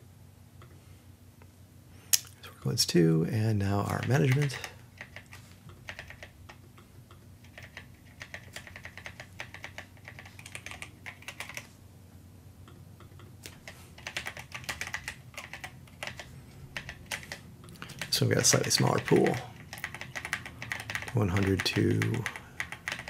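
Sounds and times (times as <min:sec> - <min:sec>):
computer keyboard typing: 0:03.7 - 0:06.7, 0:07.4 - 0:11.7, 0:13.1 - 0:23.0.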